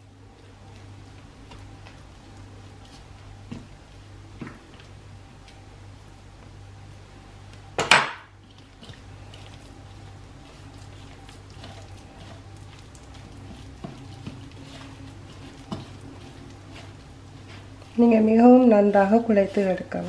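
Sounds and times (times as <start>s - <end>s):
hands kneading dough rustling: 0.0s - 20.0s
low steady hum: 0.0s - 20.0s.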